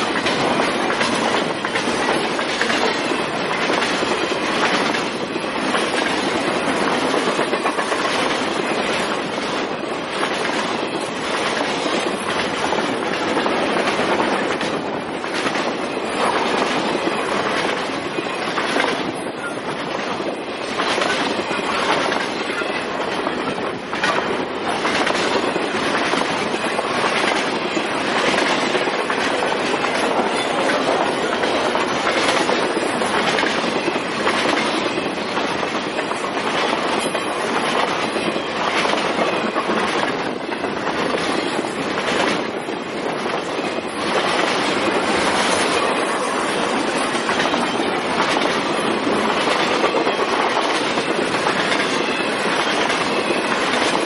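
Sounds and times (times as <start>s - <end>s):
clacks over rail joints: 0.0s - 54.0s
steel wheels rushing on rail: 0.0s - 54.0s.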